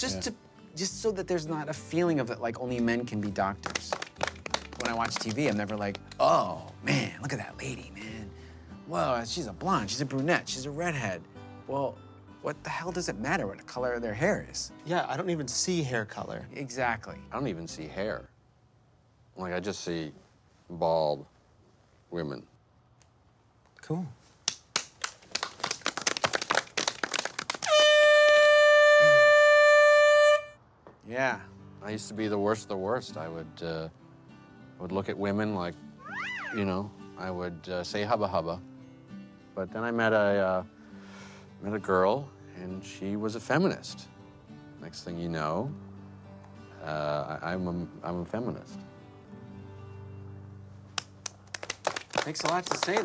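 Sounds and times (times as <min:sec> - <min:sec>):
hands clapping: 0:02.6 - 0:06.8, 0:24.4 - 0:28.0, 0:50.9 - 0:53.0
air horn blast: 0:27.7 - 0:30.6.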